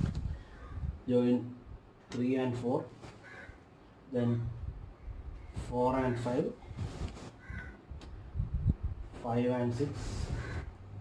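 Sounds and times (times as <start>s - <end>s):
crow caw: 3.2s - 3.6s, 7.4s - 7.8s, 10.3s - 10.7s.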